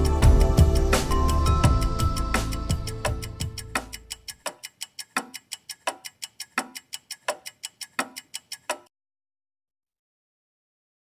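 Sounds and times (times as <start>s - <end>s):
backing music: 0.0s - 4.3s
rhythmic light ticking: 0.0s - 8.9s.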